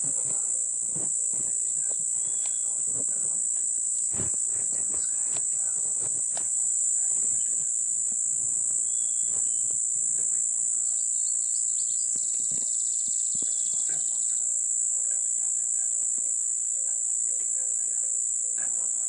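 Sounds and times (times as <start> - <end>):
faint clicks and rustles: 0.0 - 10.8
insect chorus drone: 0.0 - 19.0.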